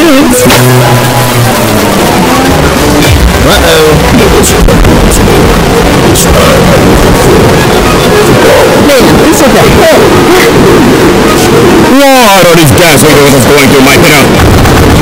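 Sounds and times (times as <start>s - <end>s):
distorted cartoon character voices: 0.0s - 15.0s.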